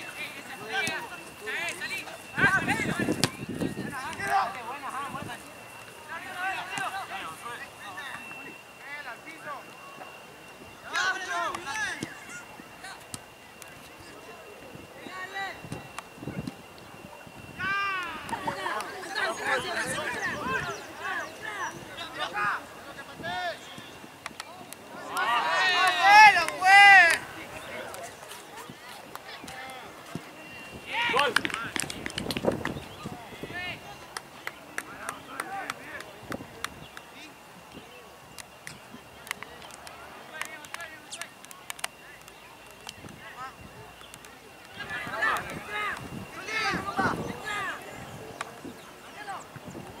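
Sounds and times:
faint voices: 0.0 - 50.0.

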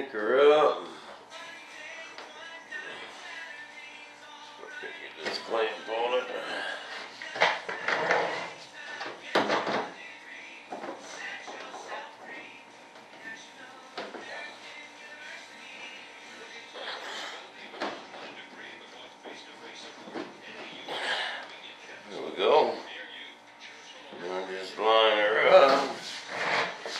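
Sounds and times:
faint background music: 0.0 - 26.9
faint background voices: 0.0 - 26.9.

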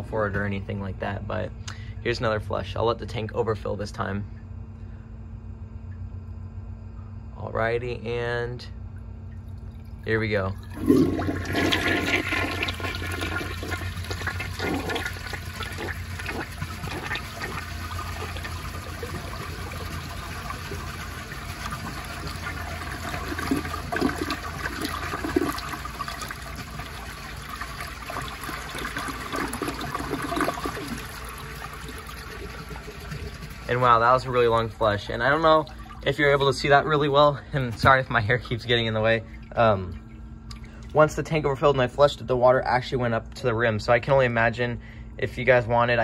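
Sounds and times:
toilet flushing: 9.5 - 38.0.

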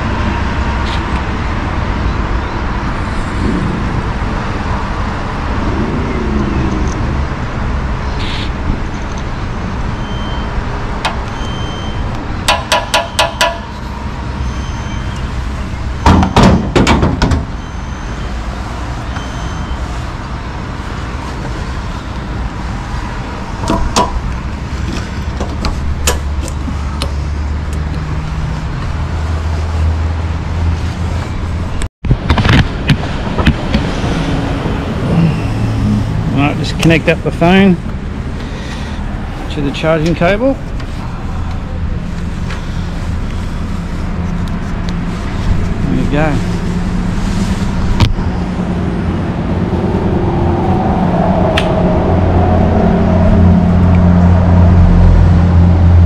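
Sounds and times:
road traffic rumble: 0.0 - 56.0
sharp clicks and knocks: 12.5 - 13.8, 23.6 - 24.3.

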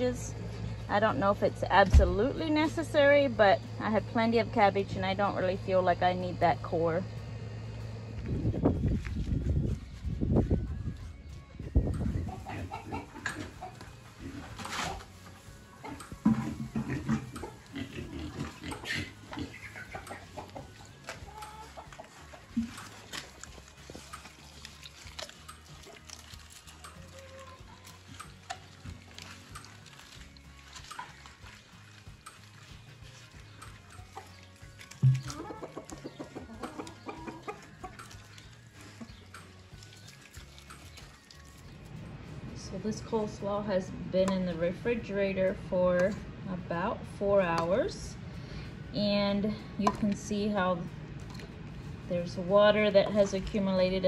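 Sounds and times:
chickens clucking: 11.8 - 26.0, 26.7 - 29.7, 30.3 - 41.2
pigs grunting: 12.3 - 15.1, 15.8 - 22.4.

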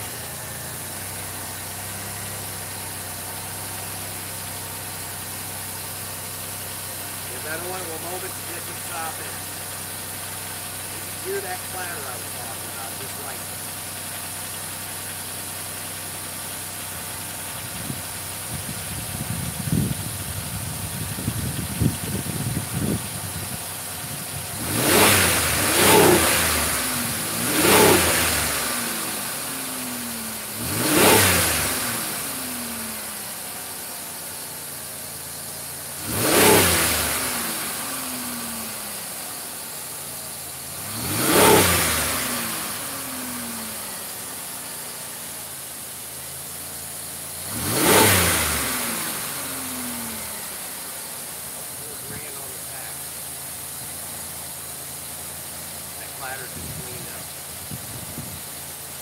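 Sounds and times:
car engine idling and revving: 0.0 - 59.0.

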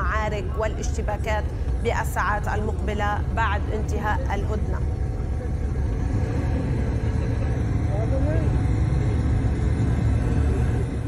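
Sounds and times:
pickup trucks rumbling in convoy: 0.0 - 11.0.

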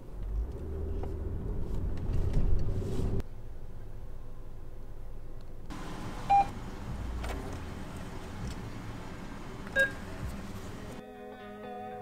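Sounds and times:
hiss of outside noise: 5.4 - 11.0
car cabin rumble: 5.7 - 11.0
short electronic beeps: 9.8 - 10.0.

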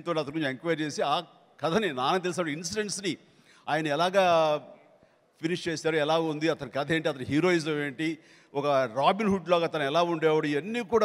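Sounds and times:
man talking into a microphone: 0.0 - 11.0.

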